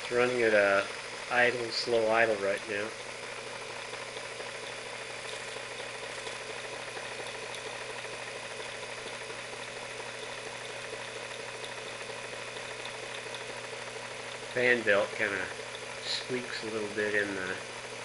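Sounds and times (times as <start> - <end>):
model engine idling: 0.0 - 18.0.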